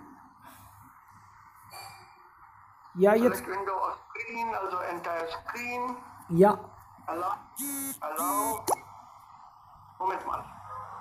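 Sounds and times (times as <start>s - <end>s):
voices over video call: 3.0s - 8.8s.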